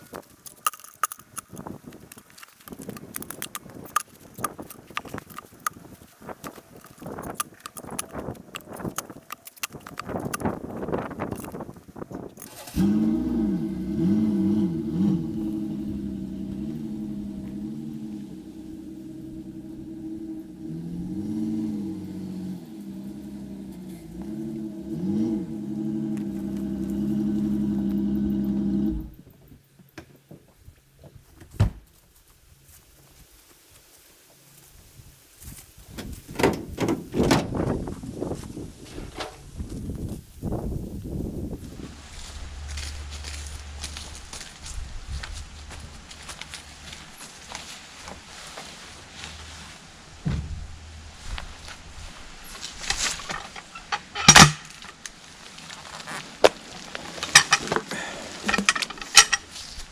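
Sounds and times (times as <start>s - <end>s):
tailgate knocks and clunks: 36.0s - 37.9s, 50.2s - 50.7s.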